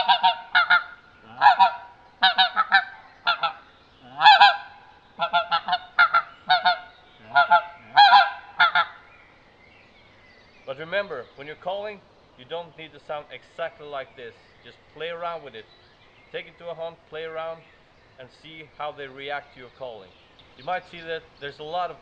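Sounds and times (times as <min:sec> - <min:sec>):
goose call notes: 0:00.0 - 0:09.0.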